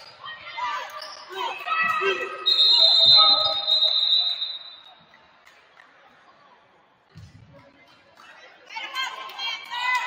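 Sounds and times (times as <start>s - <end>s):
referee's whistle blast: 2.2s - 4.9s.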